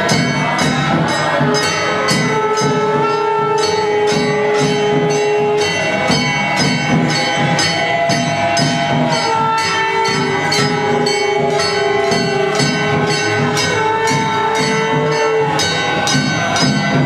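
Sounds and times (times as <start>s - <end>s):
long held melodic notes: 0.0s - 17.0s
metal percussion struck: 0.0s - 17.0s.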